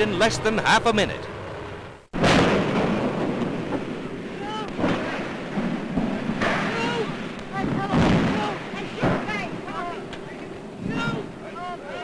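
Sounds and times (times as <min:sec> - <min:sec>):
fire roaring: 0:00.0 - 0:12.0
people shouting: 0:04.3 - 0:04.8, 0:06.6 - 0:10.1, 0:10.8 - 0:12.0.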